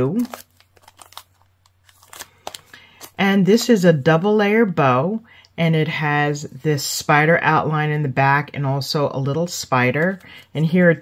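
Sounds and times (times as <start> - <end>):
plastic packet crinkling: 0.0 - 3.7.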